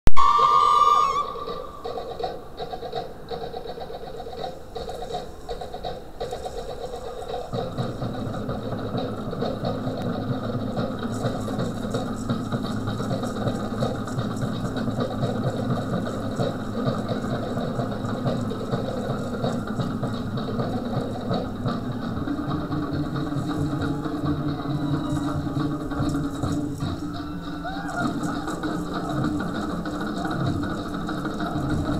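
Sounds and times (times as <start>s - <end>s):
loud pitched tone: 0.1s - 1.7s
deeper drum layer: 0.1s - 31.9s
fast drumming: 0.2s - 31.9s.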